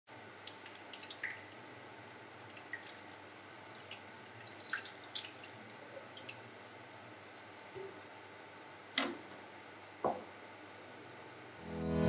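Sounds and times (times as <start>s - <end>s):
water dripping on glass: 0.3s - 1.8s, 2.4s - 5.6s.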